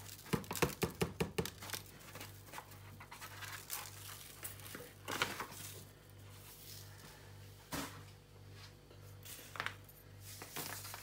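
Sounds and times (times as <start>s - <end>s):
paper bag crinkling: 0.0s - 7.0s, 9.4s - 11.0s.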